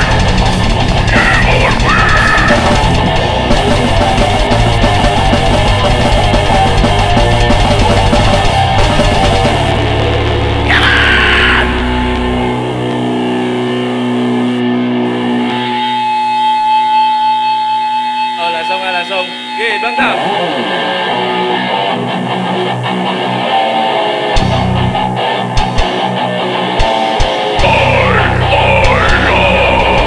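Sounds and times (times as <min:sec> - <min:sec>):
low drum thumps: 0:00.0 - 0:10.7
heavy metal band playing: 0:00.0 - 0:30.0.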